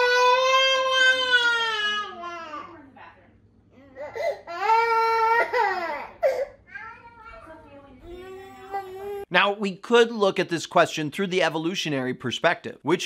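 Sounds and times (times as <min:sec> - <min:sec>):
toddler crying: 0:00.0 - 0:02.8, 0:03.8 - 0:09.3.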